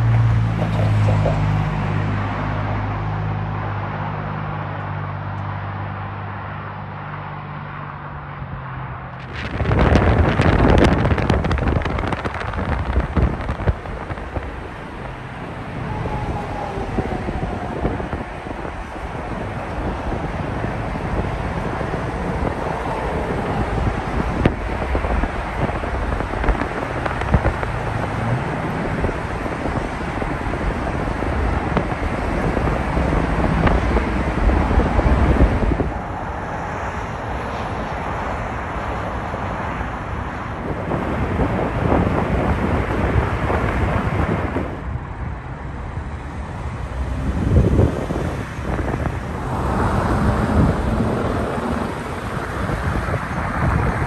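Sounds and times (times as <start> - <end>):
tyres and engine rumble: 0.0 - 54.0.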